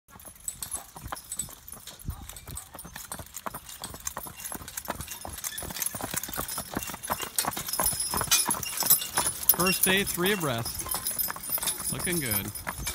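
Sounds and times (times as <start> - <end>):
harness jingling: 0.1 - 12.9
horse hooves on pavement: 0.1 - 12.9.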